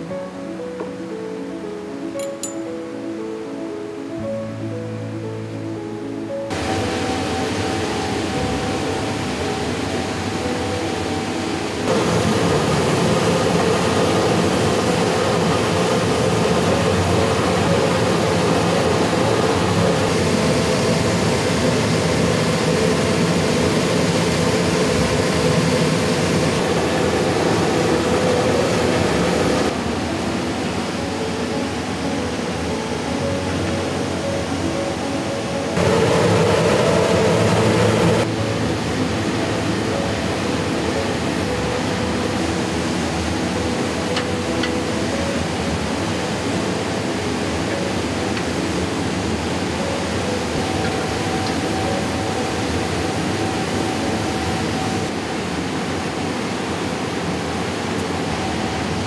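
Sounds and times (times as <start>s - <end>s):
furnace drone: 6.5s - 33.0s, 35.6s - 59.0s.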